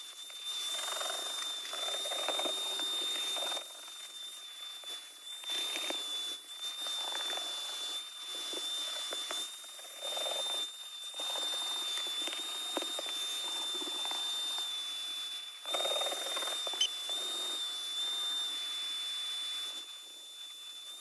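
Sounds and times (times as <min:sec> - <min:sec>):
vacuum cleaner running: 0:00.0 - 0:04.2, 0:04.8 - 0:14.7.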